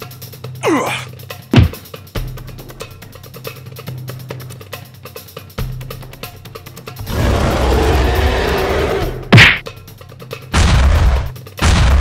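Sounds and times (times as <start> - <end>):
loud whack: 1.6 - 1.8, 9.3 - 9.6.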